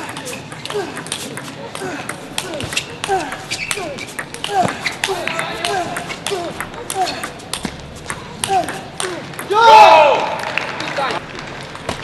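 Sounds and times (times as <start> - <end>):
shoes squeaking on floor: 2.5 - 8.4.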